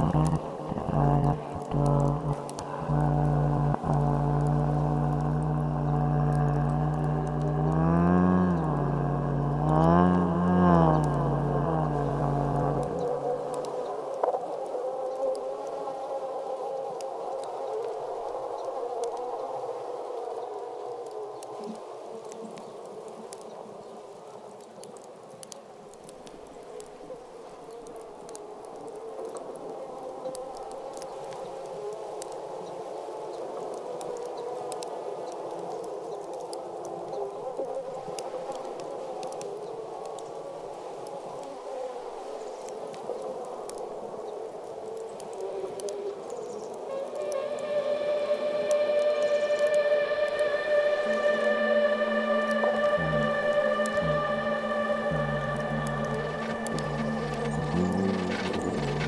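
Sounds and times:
deep ambient drone: 0.0 - 15.7, 45.8 - 59.0
buzzing hum with faint crackles: 0.0 - 59.0.

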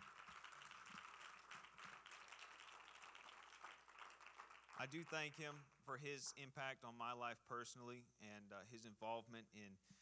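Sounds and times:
faint applause: 0.0 - 5.8.

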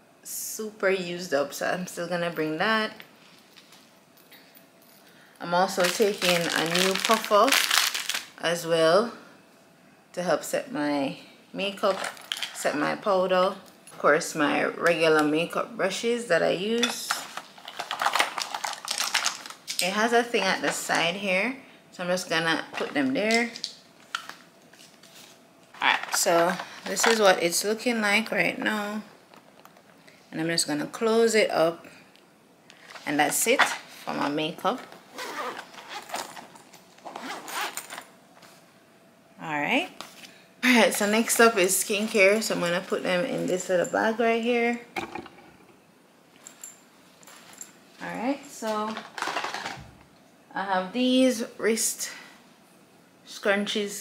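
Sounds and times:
bag being handled: 35.1 - 38.1.

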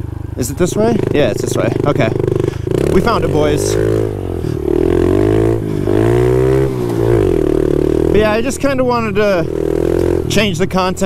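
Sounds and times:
motorbike engine revving: 0.0 - 11.0.

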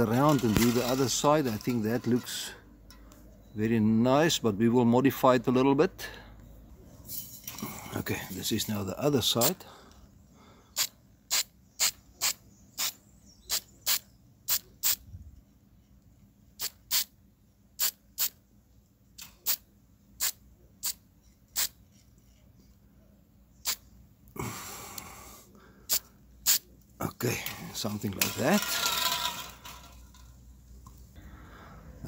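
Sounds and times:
spray paint can hissing: 10.8 - 15.0, 16.6 - 17.1, 17.8 - 18.4, 20.2 - 21.8, 25.9 - 26.6.

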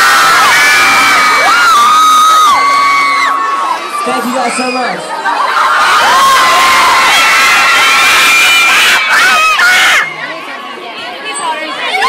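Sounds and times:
crowd screaming and cheering: 0.0 - 12.0
quiet chatter: 10.0 - 12.0.

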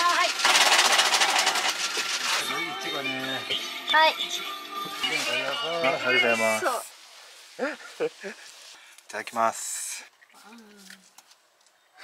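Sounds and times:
ice-shaving machine grinding: 0.0 - 3.3.

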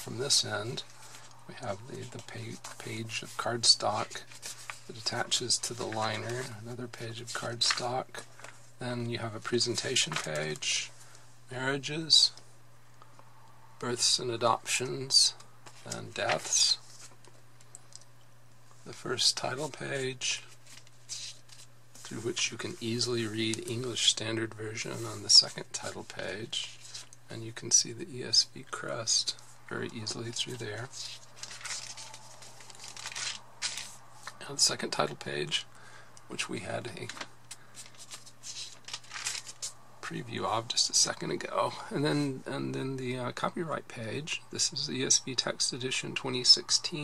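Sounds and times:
pages being handled: 0.0 - 8.7, 9.4 - 11.2, 14.7 - 18.0, 18.9 - 27.2, 29.3 - 35.0, 36.8 - 39.8
person speaking: 0.0 - 12.4, 13.8 - 16.9, 18.8 - 20.6, 22.0 - 32.2, 33.8 - 37.4, 40.0 - 47.0
steady low hum: 0.0 - 47.0.

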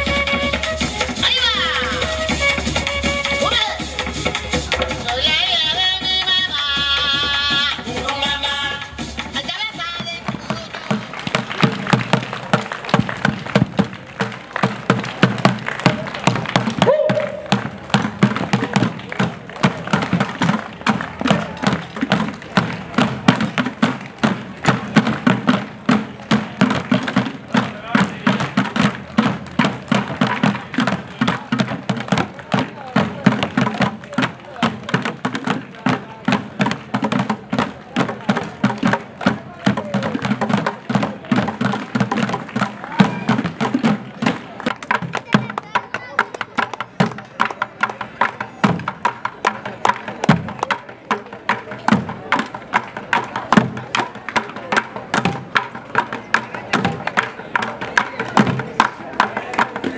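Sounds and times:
crowd voices: 0.0 - 59.9
drums beating steadily: 0.0 - 59.9.

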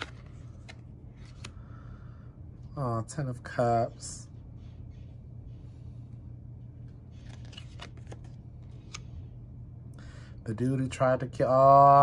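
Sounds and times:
cards rustling and sliding: 0.0 - 1.6, 6.8 - 9.3
low hum: 0.0 - 11.3.

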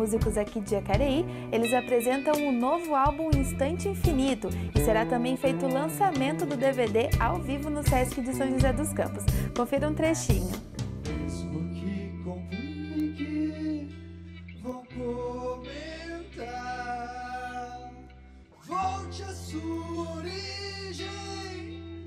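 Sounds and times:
live rock band: 0.0 - 11.4
electric guitars: 0.0 - 22.0
sung vocals: 0.0 - 22.0.

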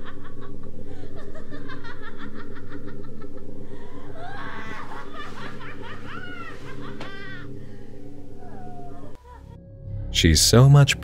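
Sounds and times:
evil staccato laughter: 0.0 - 7.8
low hum: 0.0 - 11.0.

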